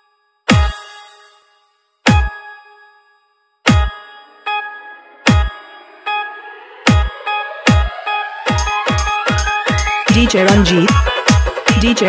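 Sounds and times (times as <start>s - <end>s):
bright bell-like stab: 0.5s - 4.1s
electronic dance music: 3.7s - 12.0s.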